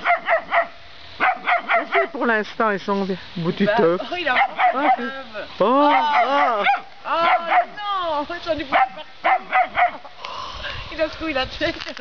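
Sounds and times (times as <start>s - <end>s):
puppy yapping: 0.0s - 2.1s, 5.9s - 7.8s, 8.7s - 10.1s.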